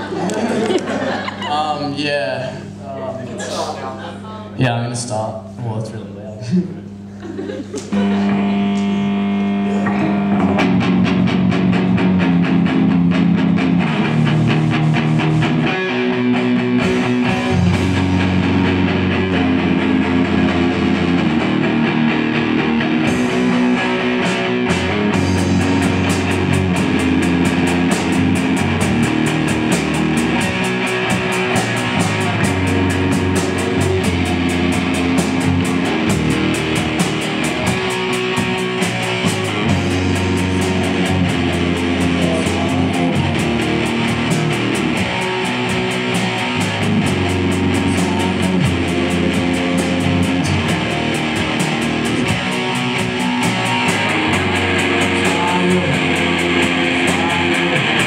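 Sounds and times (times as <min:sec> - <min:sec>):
electric bass: 0:00.0 - 0:58.0
electric guitar: 0:06.8 - 0:58.0
drum kit: 0:07.8 - 0:58.0.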